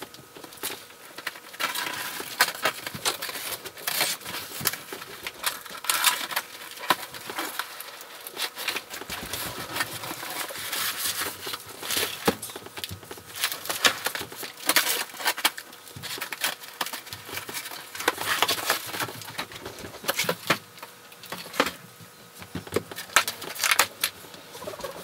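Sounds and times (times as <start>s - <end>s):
packaging crinkling: 0.3s - 21.8s.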